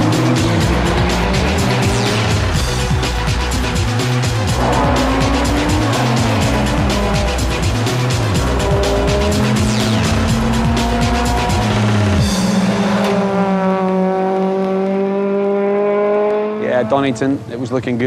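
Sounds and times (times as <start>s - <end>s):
music with heavy beat: 0.0s - 13.2s
racing car engine accelerating: 0.0s - 17.5s.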